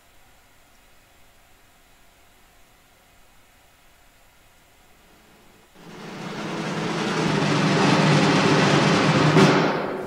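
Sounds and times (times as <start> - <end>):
rumbling noise: 5.8 - 10.0.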